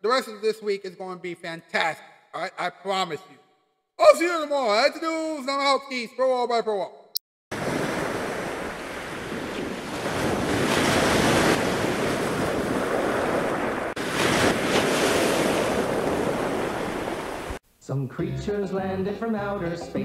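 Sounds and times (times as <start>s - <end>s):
ocean surf: 7.5s - 17.6s
wind noise on microphone: 7.6s - 17.6s.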